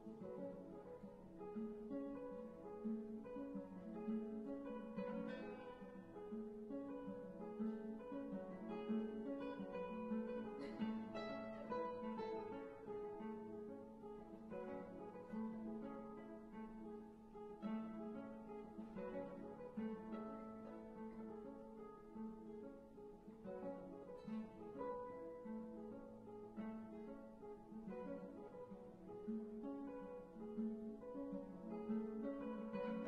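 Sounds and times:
classical guitar duet: 0:00.0 - 0:33.0.

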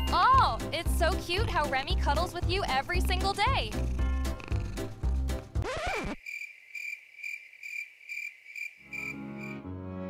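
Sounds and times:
low background music: 0:00.0 - 0:05.6
cricket chirping: 0:06.2 - 0:09.6.

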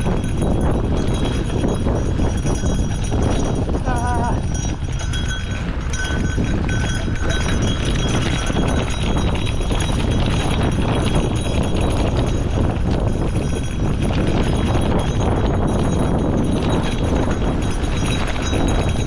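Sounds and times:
bike clattering over bumps: 0:00.0 - 0:19.0
wind rumble on microphone: 0:00.0 - 0:19.0
bike tyres crunching on loose stones: 0:04.7 - 0:15.2, 0:15.8 - 0:19.0.

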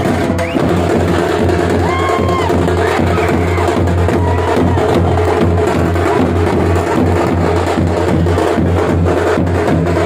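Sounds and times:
snare and bass drums: 0:00.0 - 0:10.0.

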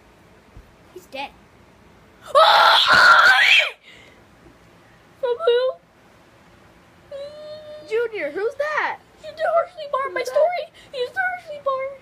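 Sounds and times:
child screaming: 0:02.2 - 0:03.8.

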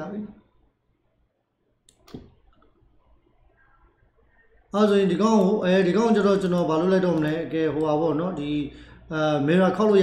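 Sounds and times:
computer mouse clicks: 0:01.8 - 0:02.8, 0:06.4 - 0:08.0.

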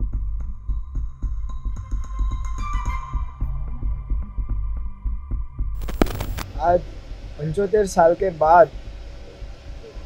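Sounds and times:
throbbing bass music: 0:03.4 - 0:07.0.

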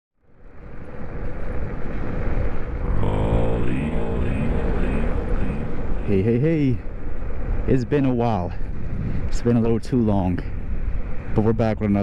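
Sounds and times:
wind rumble on microphone: 0:00.3 - 0:12.0
voice-like sound sliding down: 0:02.8 - 0:06.5.

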